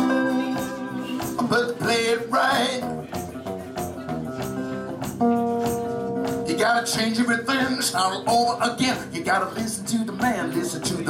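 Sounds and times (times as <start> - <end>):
electric guitar blues phrase: 0.0 - 11.0.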